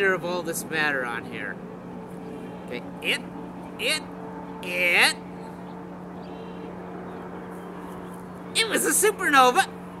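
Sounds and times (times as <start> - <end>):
faint outdoor background noise: 0.0 - 10.0
steady low hum: 0.0 - 10.0.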